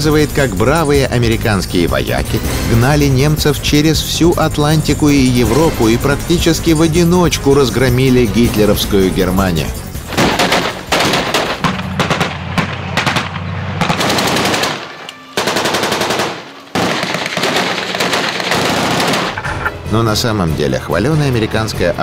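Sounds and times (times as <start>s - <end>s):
rapid machine-gun fire: 10.1s - 19.4s.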